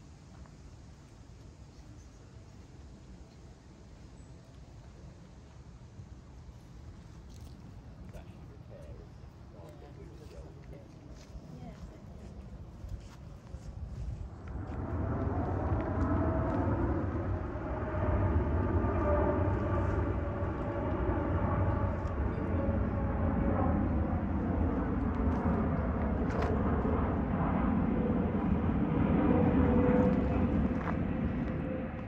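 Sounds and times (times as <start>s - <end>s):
jet airliner flying overhead: 5.6s - 32.0s.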